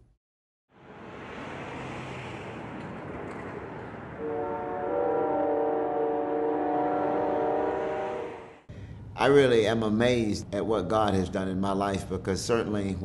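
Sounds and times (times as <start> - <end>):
outdoor street noise: 0.7 - 9.1
train horn chord: 4.2 - 8.7.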